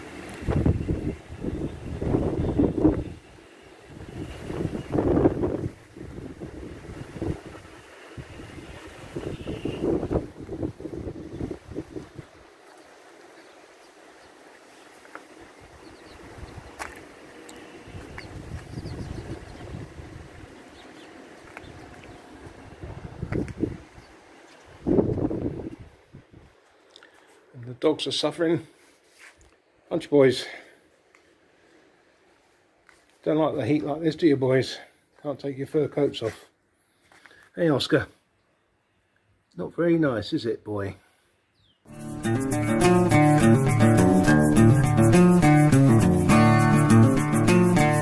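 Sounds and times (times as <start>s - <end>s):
gusty wind buffeting microphone: 0.3s - 12.4s, 15.6s - 16.8s, 17.9s - 26.6s.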